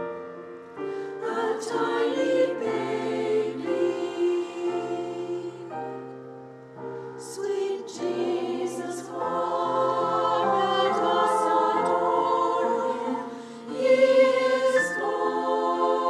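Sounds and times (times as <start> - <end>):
women's choir singing: 1.0 - 6.1, 6.9 - 16.0.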